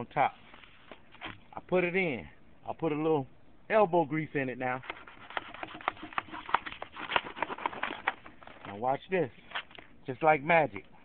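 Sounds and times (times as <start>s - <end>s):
knife clicking and scraping through fish: 4.8s - 8.3s.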